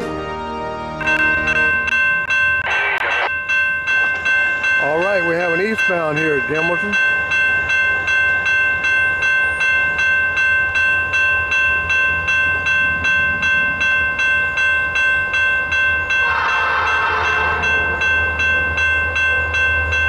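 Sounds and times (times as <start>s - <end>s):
diesel locomotives rumbling: 0.0s - 20.0s
crossing warning bell ringing: 1.0s - 20.0s.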